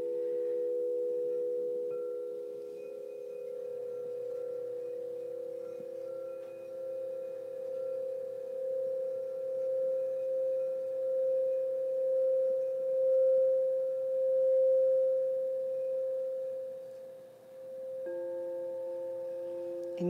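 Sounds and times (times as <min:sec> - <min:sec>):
crystal singing bowl ringing: 0:00.0 - 0:20.0
lower singing bowl tone: 0:00.0 - 0:20.0.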